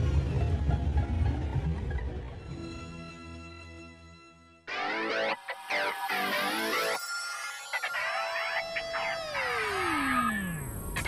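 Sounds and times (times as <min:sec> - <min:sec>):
held synth tone gliding down: 0:04.8 - 0:11.0
electronic sweeps: 0:05.1 - 0:11.0.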